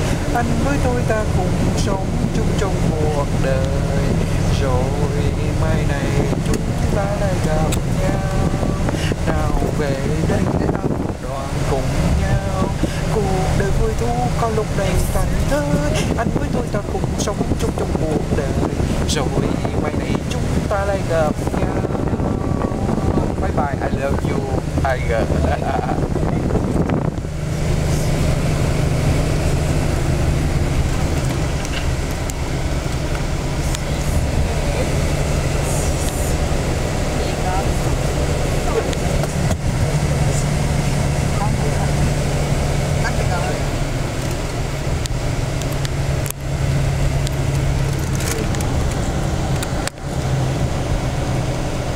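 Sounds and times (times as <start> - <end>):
coach engine and road drone: 0.0 - 51.9.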